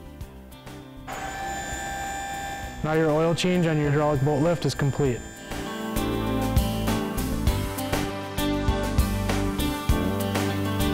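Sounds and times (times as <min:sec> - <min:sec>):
electric pump motor whining: 0:01.1 - 0:08.0.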